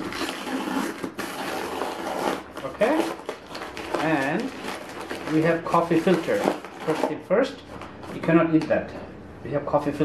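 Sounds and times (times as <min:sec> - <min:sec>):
paper envelope tearing and rustling: 0:00.0 - 0:07.7.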